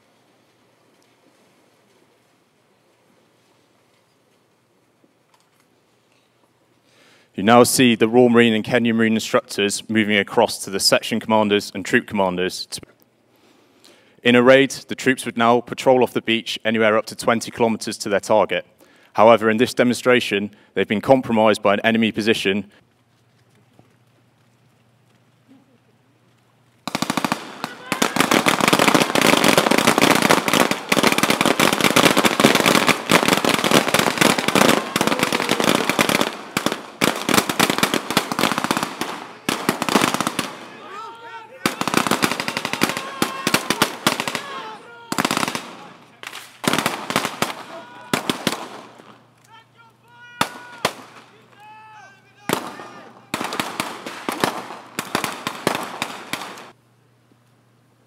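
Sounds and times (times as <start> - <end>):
rapid gunfire: 26.9 - 40.8, 41.6 - 46.0, 46.6 - 49.0, 52.5 - 56.7
men shouting: 27.6 - 28.4, 34.4 - 36.3, 40.6 - 46.3, 47.4 - 48.4, 49.5 - 53.5.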